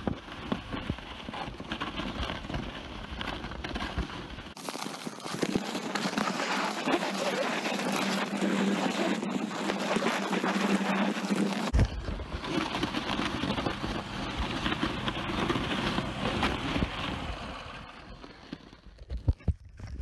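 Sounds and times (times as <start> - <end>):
rope and handling noise: 0.0 - 20.0
sled scraping over snow: 0.0 - 20.0.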